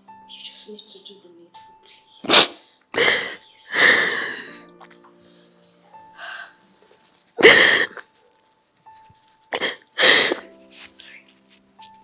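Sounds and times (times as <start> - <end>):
woman sobbing: 2.9 - 4.8, 7.4 - 8.1.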